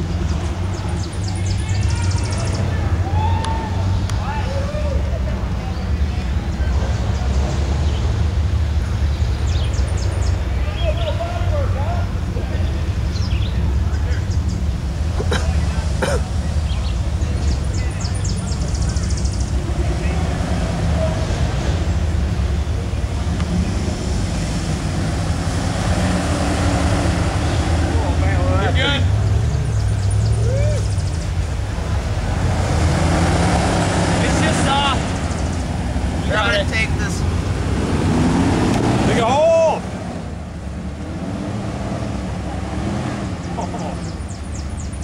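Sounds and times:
car engine low rumble: 0.0s - 45.0s
voices talking: 0.0s - 45.0s.

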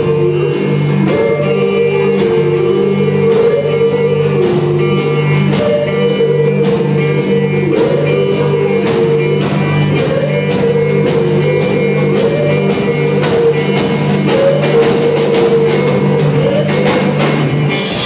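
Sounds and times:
electric guitars bending notes: 0.0s - 18.0s
steady drum kit beat: 0.0s - 18.0s.

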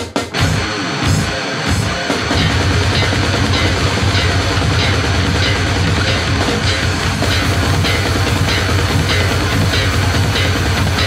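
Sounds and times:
death metal music: 0.3s - 11.0s.

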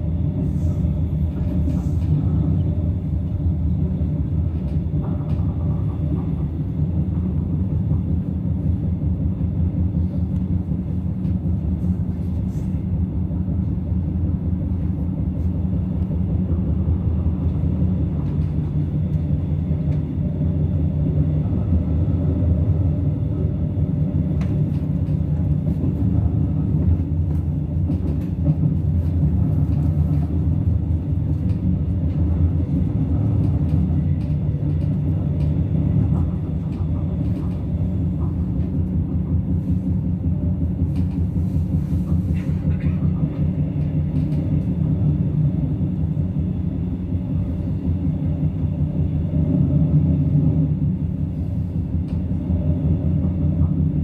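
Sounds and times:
train rumbling on track: 0.0s - 54.0s.

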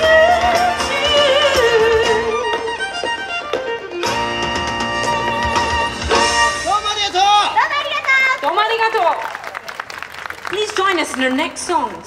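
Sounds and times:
guitar accompaniment: 0.0s - 6.7s
folk fiddle tune: 0.0s - 6.8s.

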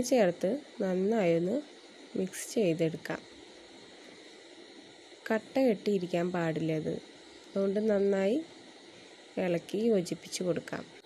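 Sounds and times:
woman speaking: 0.0s - 3.2s, 5.2s - 7.0s, 7.6s - 8.5s, 9.4s - 10.9s.

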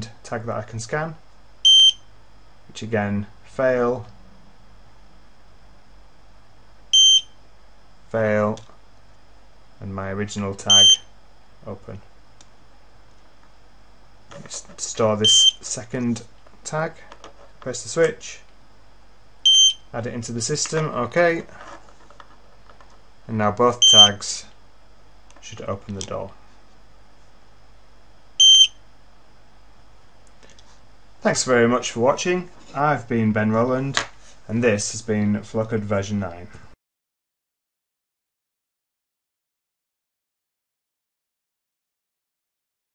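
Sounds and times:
faint high whine: 0.0s - 30.0s.

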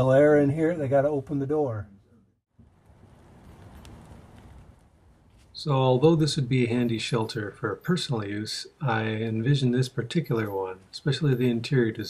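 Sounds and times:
low even hiss: 2.6s - 12.0s.

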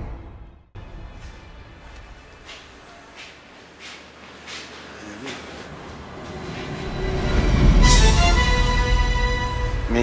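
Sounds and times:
sustained music chords: 6.6s - 10.0s.

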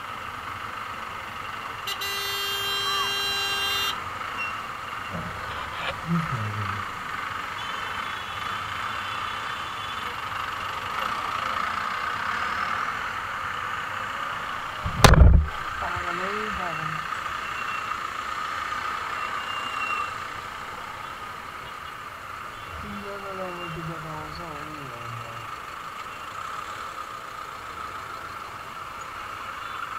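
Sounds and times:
vehicle engines running: 0.0s - 29.9s
faint voices: 5.2s - 6.9s
loud short thump: 14.8s - 15.6s.

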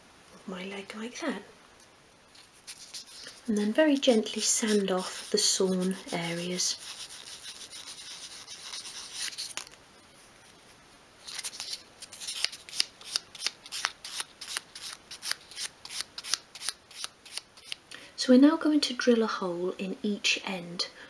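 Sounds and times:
sandpaper rubbing on wood: 2.6s - 9.5s.

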